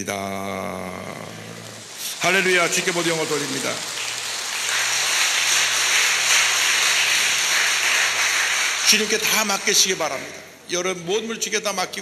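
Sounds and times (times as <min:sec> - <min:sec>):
crowd applauding: 0:00.6 - 0:11.3.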